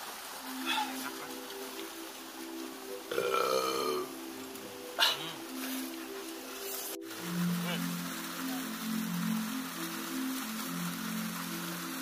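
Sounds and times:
background music: 0.0s - 12.0s
person burping loudly: 3.1s - 4.1s.

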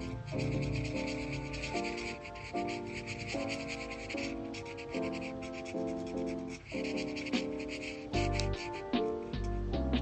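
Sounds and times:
marker scratching on paper: 0.0s - 9.3s
soft background music: 0.0s - 10.0s.

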